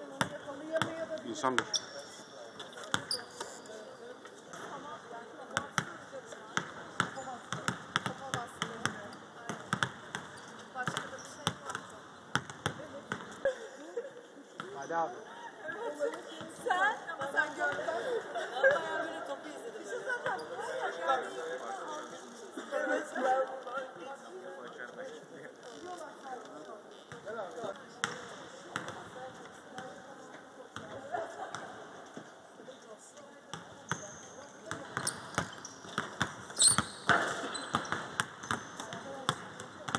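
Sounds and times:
voices in a large hall: 0.0 - 39.9
basketballs bouncing on court floor: 0.1 - 1.8, 2.8 - 3.2, 5.5 - 13.4, 27.1 - 30.0, 33.5 - 39.9.

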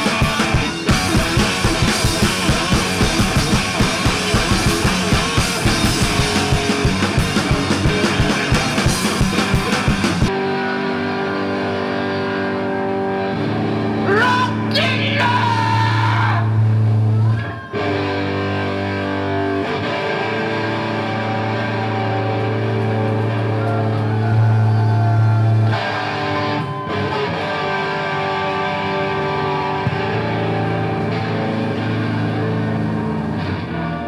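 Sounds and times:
electric guitar chords ringing: 0.0 - 34.0.

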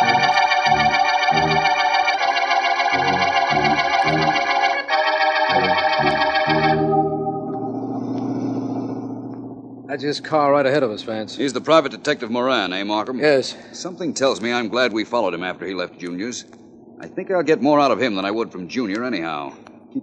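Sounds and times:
pulsing bass: 0.0 - 2.2, 2.9 - 4.6, 5.4 - 12.0
low steady drone: 0.0 - 13.1
organ chords: 0.0 - 13.5.

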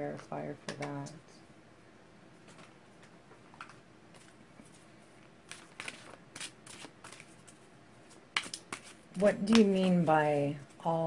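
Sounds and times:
cards being shuffled: 2.4 - 10.2.

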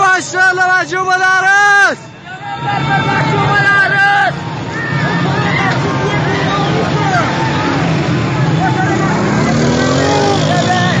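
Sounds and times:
continuous noise: 0.0 - 11.0
people shouting: 1.2 - 11.0
vehicle engine rising in pitch: 5.0 - 11.0.

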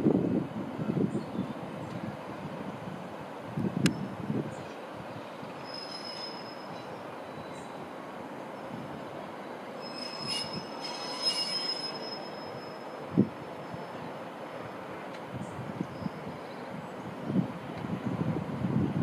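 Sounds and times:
train rushing rumble: 0.0 - 19.0.

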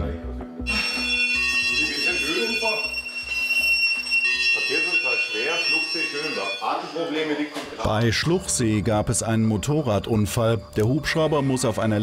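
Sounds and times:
background music with steady beat: 0.0 - 12.0
high-pitched alarm tone: 0.7 - 7.9.

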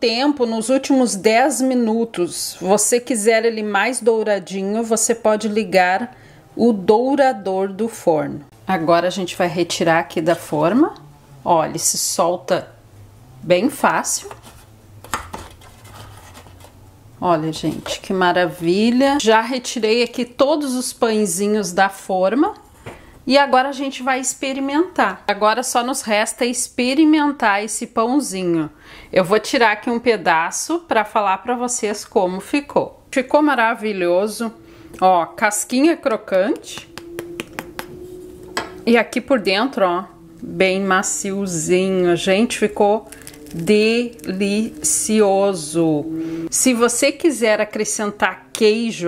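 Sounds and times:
faint hum: 31.3 - 49.0
bread crust crackling: 42.7 - 45.2.

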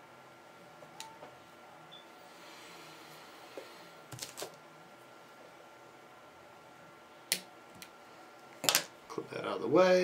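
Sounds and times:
steady low room hum: 0.0 - 10.0.

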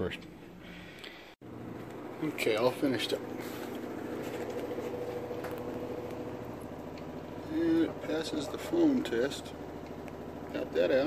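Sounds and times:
steady mechanical hum: 0.0 - 11.0.

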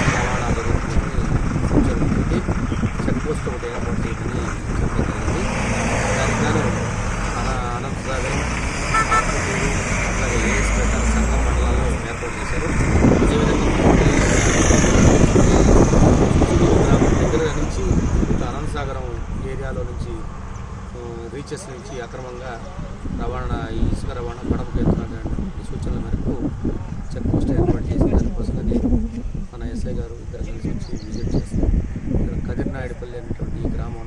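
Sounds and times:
man talking: 0.0 - 20.3, 21.0 - 26.5, 27.1 - 34.0
highway traffic rumble: 0.0 - 34.0.

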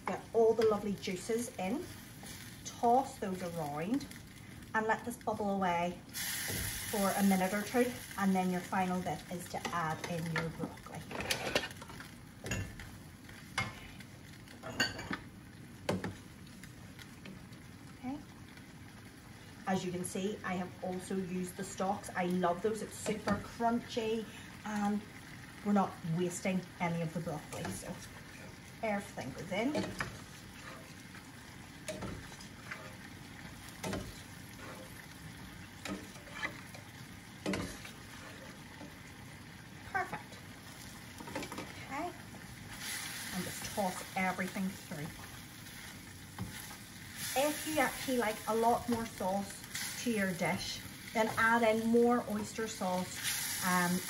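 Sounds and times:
food sizzling in a wok: 0.0 - 54.0
pots bubbling on a stove: 0.0 - 54.0
utensils scraping and knocking pans: 11.1 - 11.8, 35.8 - 36.8.

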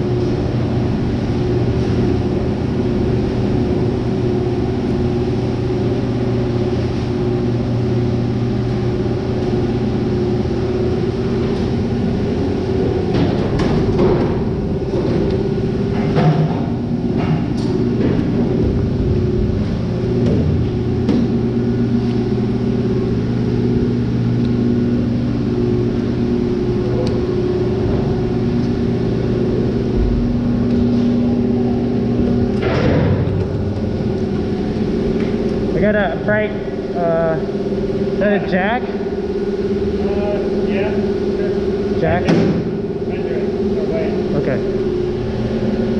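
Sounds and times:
machinery humming: 0.0 - 45.9.

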